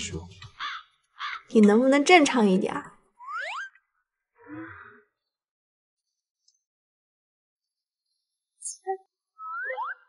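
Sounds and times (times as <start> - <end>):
cartoon rising pitch glide: 8.8 - 10.0.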